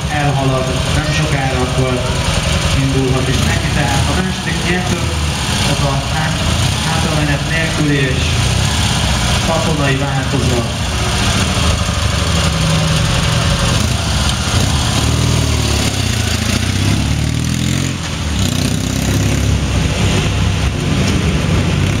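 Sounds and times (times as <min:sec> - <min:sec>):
motorcycle engine revving: 0:00.0 - 0:22.0
motorcycle pulling away over cobblestones: 0:00.0 - 0:22.0.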